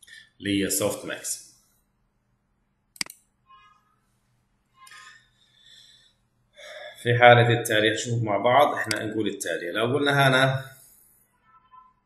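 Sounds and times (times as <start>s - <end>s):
man talking: 0.4s - 1.5s, 6.7s - 10.8s
man breathing in: 4.9s - 7.0s.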